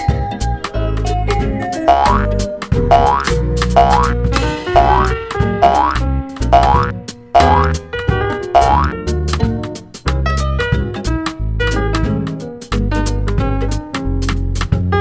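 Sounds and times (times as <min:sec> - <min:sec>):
upbeat music with bass beat: 0:01.8 - 0:04.2, 0:04.8 - 0:07.8, 0:08.6 - 0:09.0
cartoon boing sound effect: 0:01.9 - 0:04.2, 0:04.8 - 0:07.8, 0:08.6 - 0:09.0.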